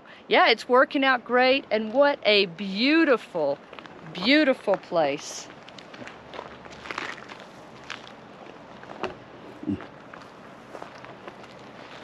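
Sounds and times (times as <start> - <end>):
faint outdoor hiss: 0.0 - 12.0
footsteps on dry grass and dirt: 5.4 - 12.0.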